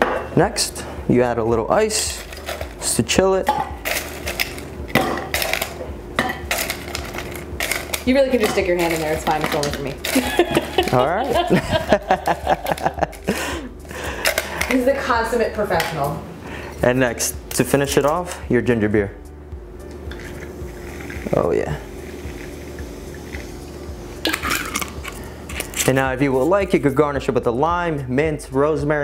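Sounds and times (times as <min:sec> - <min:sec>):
ice cubes clinking on metal: 0:02.0 - 0:03.0, 0:03.8 - 0:11.2.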